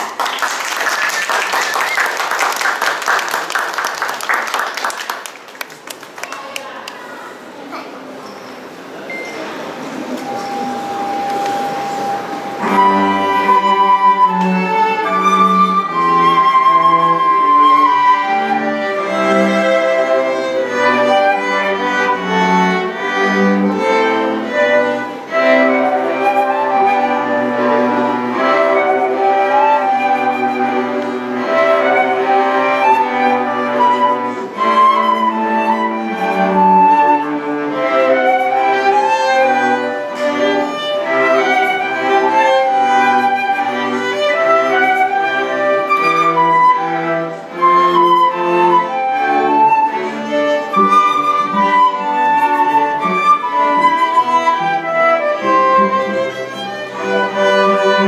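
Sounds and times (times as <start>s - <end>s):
chamber quartet playing: 8.8s - 58.0s
flute melody: 10.0s - 58.0s.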